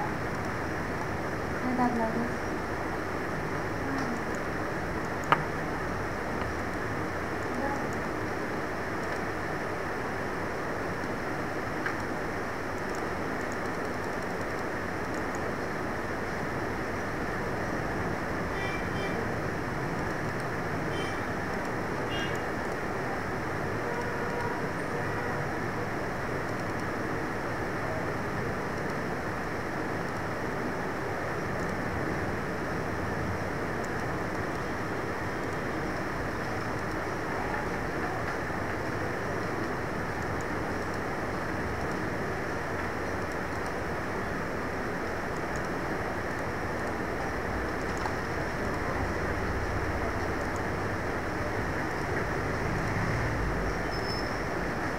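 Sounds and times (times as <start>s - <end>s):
steady hiss and rumble: 0.0s - 54.9s.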